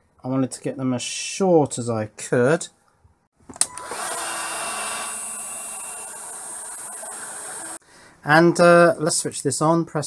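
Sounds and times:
hot air gun blowing: 3.8 - 7.8.

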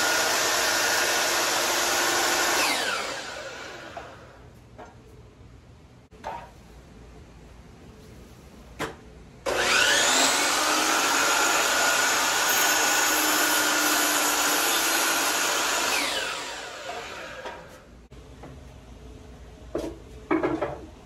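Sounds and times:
miter saw motor whining: 9.5 - 17.5.

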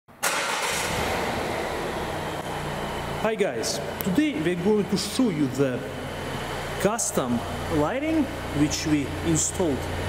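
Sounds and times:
car engine idling: 0.2 - 10.0.

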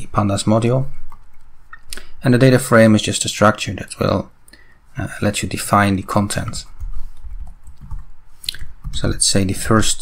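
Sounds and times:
soft keyboard keystrokes: 6.4 - 9.2.

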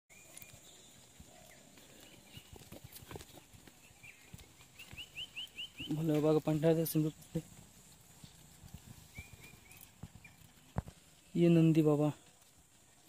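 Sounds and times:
bird chirping: 0.1 - 13.0.

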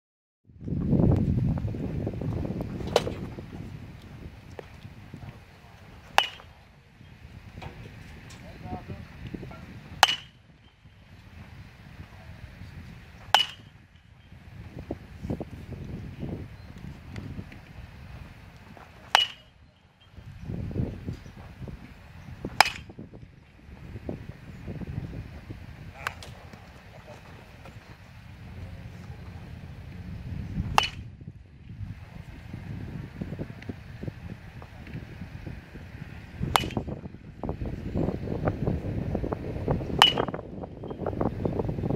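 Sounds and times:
wind rumbling on microphone: 0.5 - 41.9
metal bat hitting baseball: 2.9 - 3.2, 6.1 - 6.5, 9.9 - 10.8, 13.2 - 13.8, 19.0 - 19.6, 22.5 - 22.9, 30.7 - 31.2, 36.4 - 37.0, 40.0 - 40.5
sharp crack: 6.1 - 6.6, 10.0 - 10.4, 13.2 - 13.8, 19.0 - 19.6, 22.5 - 22.9, 26.0 - 26.4, 30.7 - 31.1, 36.4 - 37.0.

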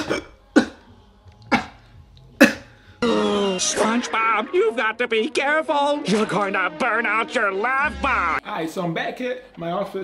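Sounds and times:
man coughing: 0.0 - 0.8, 2.4 - 3.2.

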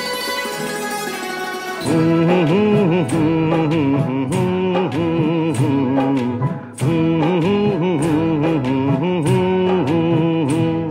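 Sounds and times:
plucked string background music: 0.0 - 10.9.

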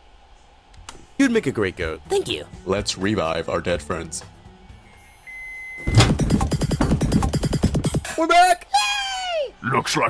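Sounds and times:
microwave button beep: 5.0 - 6.0
electronic music with pounding beat: 6.0 - 8.1.

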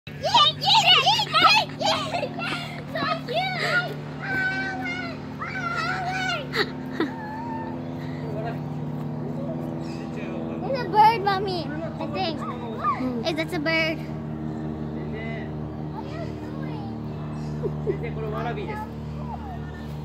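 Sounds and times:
steady low hum: 0.1 - 20.0
child squealing and calling out: 3.2 - 7.8.

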